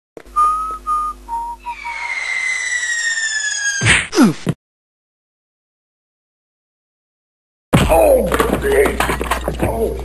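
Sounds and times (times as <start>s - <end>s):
short whistled notes: 0.3s - 3.8s
whistle falling in pitch: 0.3s - 3.8s
cartoon crash: 1.6s - 4.5s.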